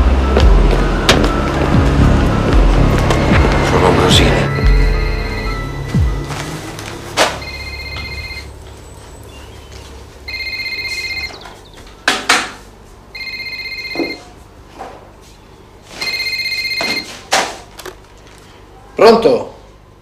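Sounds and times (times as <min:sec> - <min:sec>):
phone ringing with electronic trill: 0:00.2 - 0:06.3, 0:07.4 - 0:08.6, 0:10.3 - 0:11.5, 0:13.1 - 0:14.4, 0:15.9 - 0:17.2
sharp knocks and thumps: 0:00.4 - 0:01.9.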